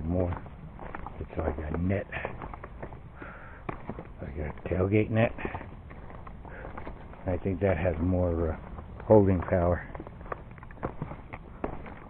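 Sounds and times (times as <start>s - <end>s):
footsteps crunching on gravel: 0.0s - 12.0s
stones clicking underfoot: 0.0s - 12.0s.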